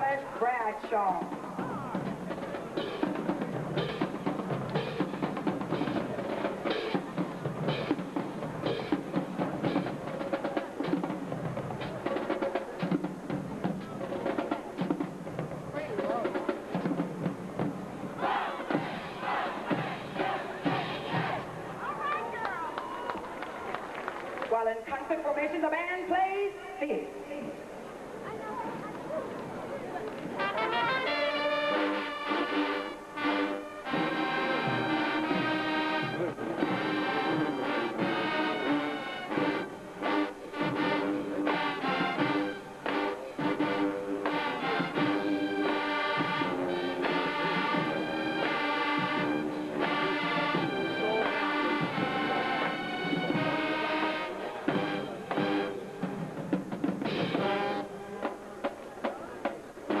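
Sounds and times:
marching band playing: 0.0s - 26.6s, 28.2s - 60.0s.

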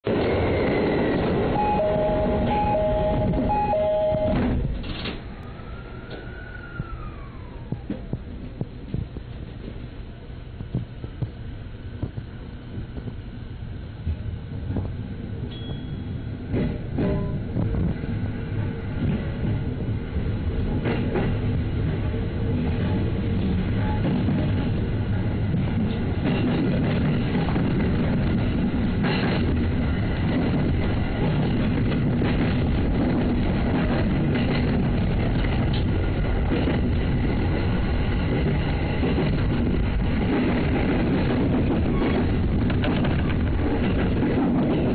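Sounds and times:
electric train rumble: 0.0s - 44.9s.

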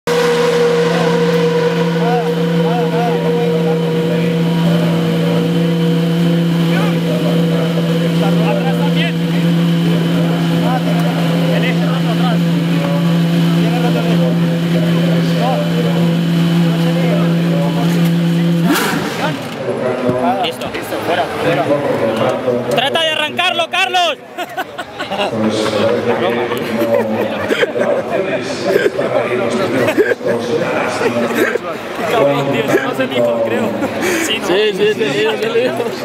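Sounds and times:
racing car engine idling: 0.1s - 19.7s.

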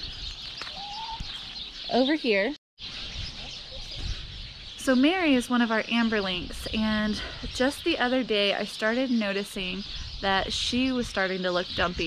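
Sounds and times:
hen call: 0.7s - 1.3s.

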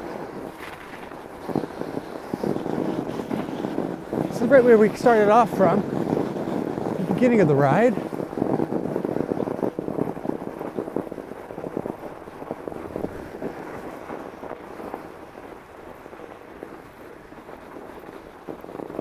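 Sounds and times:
bike tyres crunching over snow: 0.0s - 19.0s.

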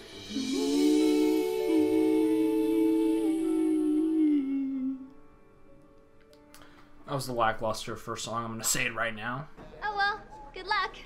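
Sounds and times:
man and woman singing in harmony: 0.0s - 5.4s.

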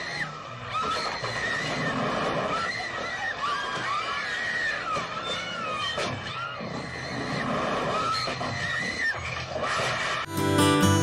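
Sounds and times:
strummed acoustic guitar music: 10.3s - 11.0s.

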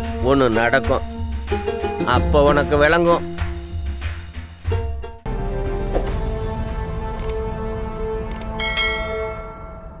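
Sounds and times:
bell-like chime: 8.6s - 10.0s.

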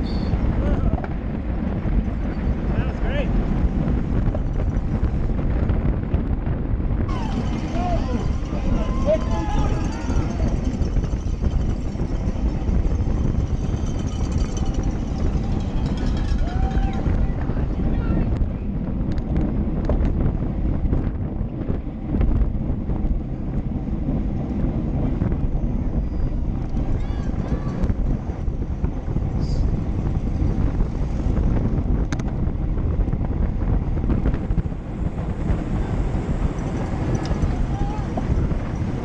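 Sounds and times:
wind rushing over microphone: 0.0s - 39.0s.

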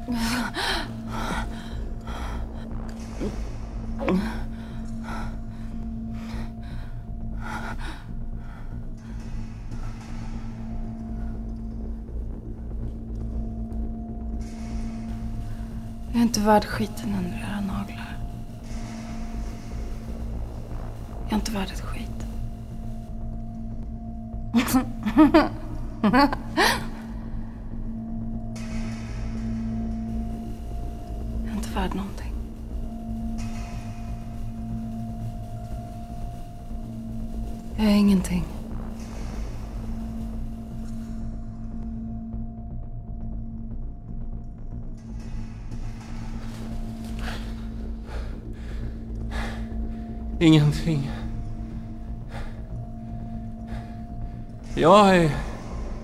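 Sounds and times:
low ambient drone: 0.0s - 56.0s
steady low hum: 0.0s - 56.0s.

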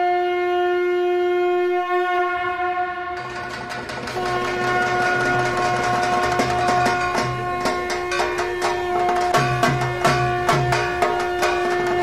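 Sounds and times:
conch shell blowing: 0.0s - 12.0s
rattling clicking percussion: 3.1s - 12.0s.

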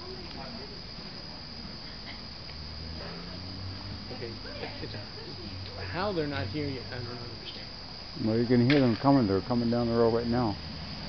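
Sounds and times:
faint voices murmuring: 0.0s - 9.6s
crickets chirping: 0.0s - 11.0s.

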